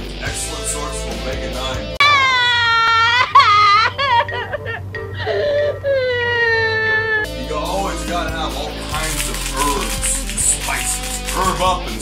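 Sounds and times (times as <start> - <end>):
cartoon woman wailing: 2.0 - 7.3.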